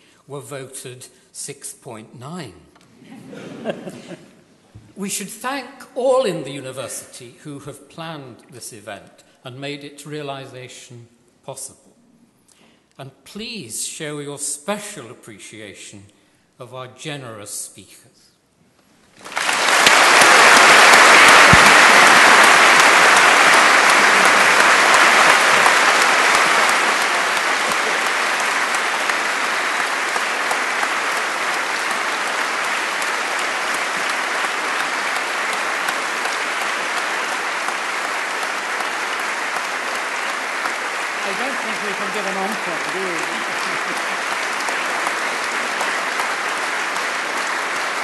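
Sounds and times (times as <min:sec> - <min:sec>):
audience applauding: 0:19.2 - 0:48.0.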